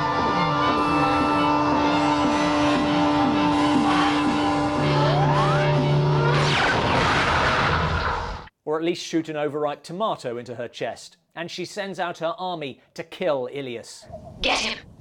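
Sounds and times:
rising synth sweep: 0:00.0 - 0:07.9
synthesizer drone with pulses: 0:00.0 - 0:08.0.

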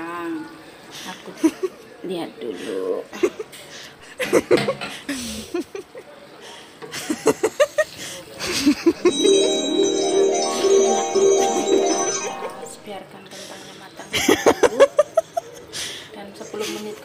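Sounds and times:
bell-like chiming melody: 0:09.1 - 0:13.0.

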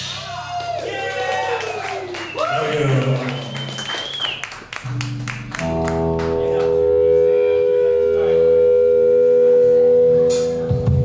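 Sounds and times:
electric guitar chord ringing: 0:04.9 - 0:11.0.

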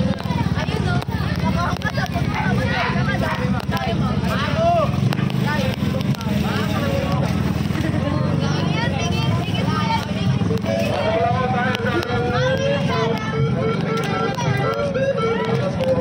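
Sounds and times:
crowd talking: 0:00.0 - 0:16.0.

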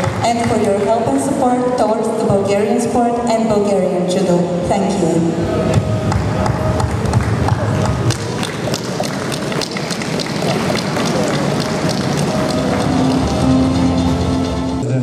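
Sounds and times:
music playing: 0:00.0 - 0:15.0
audience applauding: 0:06.1 - 0:14.6.

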